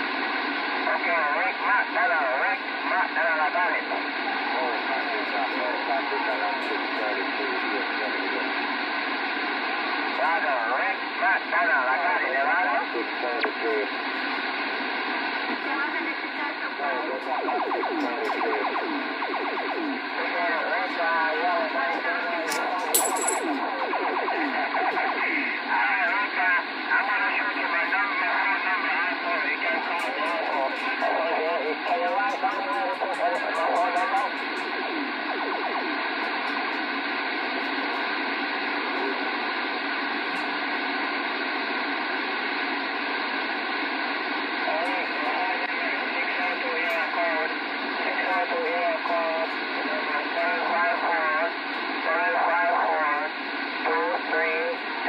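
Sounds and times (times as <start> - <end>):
radio static hiss: 0.0 - 55.0
voices over two-way radio: 0.0 - 55.0.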